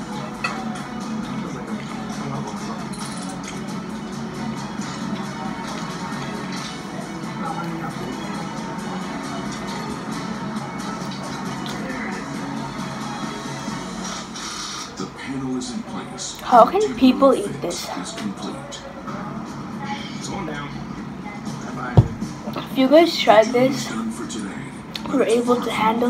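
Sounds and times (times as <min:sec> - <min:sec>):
television background music: 0:00.0 - 0:26.0.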